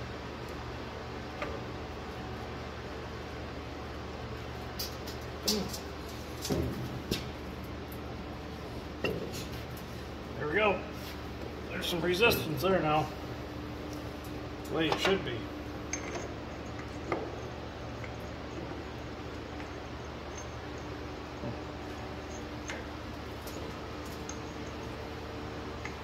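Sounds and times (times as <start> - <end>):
steady low hum: 0.0 - 26.0
light metallic clinks and knocks: 15.9 - 18.5, 19.4 - 25.0.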